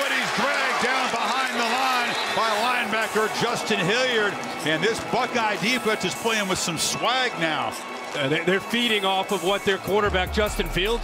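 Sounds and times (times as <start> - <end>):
man giving sports commentary: 0.0 - 11.0.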